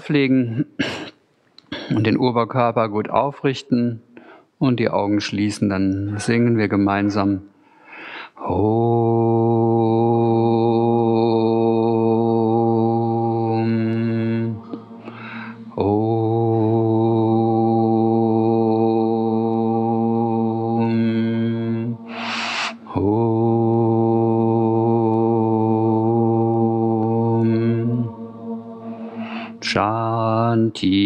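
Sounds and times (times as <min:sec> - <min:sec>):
man breathing in: 0:07.6 - 0:08.4, 0:15.0 - 0:15.7, 0:22.1 - 0:22.9, 0:28.8 - 0:29.6
man chanting om: 0:08.4 - 0:31.0.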